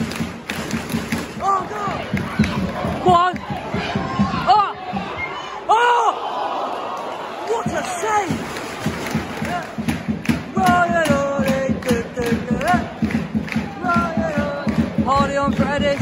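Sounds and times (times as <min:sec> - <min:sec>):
crowd noise: 0:00.0 - 0:16.0
crowd chanting and singing: 0:01.0 - 0:05.8, 0:06.5 - 0:16.0.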